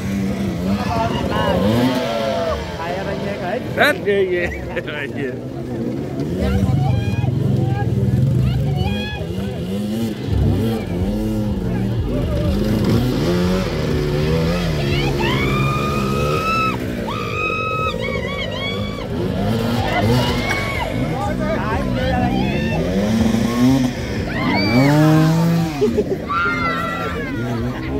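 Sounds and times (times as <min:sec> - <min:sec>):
dirt bike engines revving: 0:00.0 - 0:27.9.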